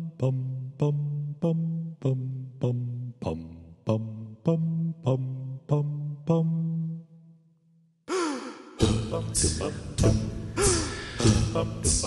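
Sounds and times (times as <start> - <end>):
vocal percussion: 8.1 - 12.0.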